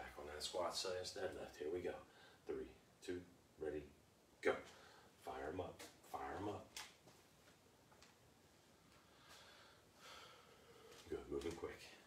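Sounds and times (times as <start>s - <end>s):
man breathing with exertion: 9.0s - 11.1s.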